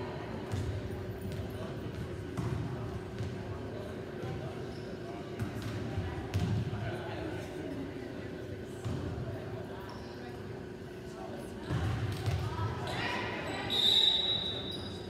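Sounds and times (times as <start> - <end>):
background chatter: 0.0 - 15.0.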